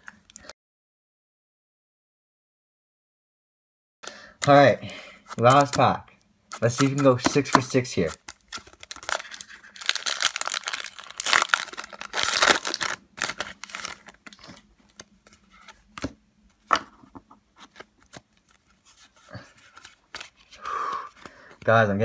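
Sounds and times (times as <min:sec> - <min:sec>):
cards clicking and rustling: 0:04.4 - 0:05.9, 0:06.5 - 0:16.8, 0:17.6 - 0:21.8
foil wrapper tearing and crinkling: 0:06.5 - 0:14.6.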